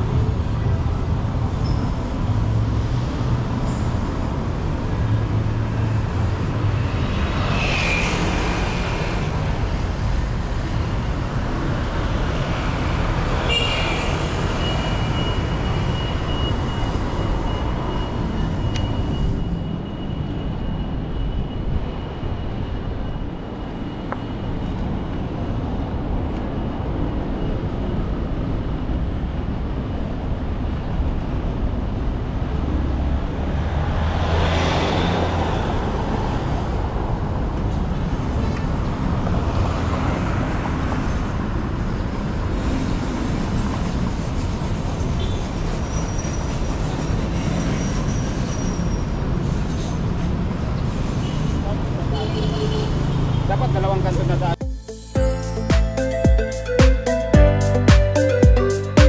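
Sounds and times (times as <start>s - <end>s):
traffic rumble: 0.0s - 54.6s.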